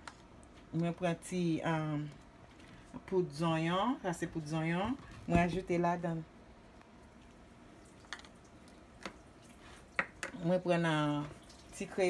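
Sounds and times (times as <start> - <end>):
containers clicking and tapping: 10.0 - 10.4.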